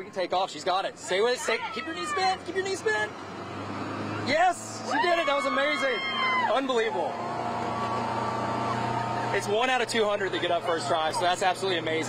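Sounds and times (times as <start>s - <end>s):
boat engine running: 6.1s - 12.0s.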